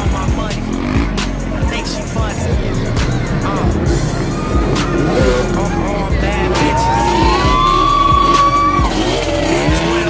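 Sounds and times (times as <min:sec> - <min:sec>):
music: 0:00.0 - 0:10.0
vehicle engines: 0:00.0 - 0:10.0
voices: 0:00.0 - 0:10.0
rising whine: 0:02.4 - 0:09.4.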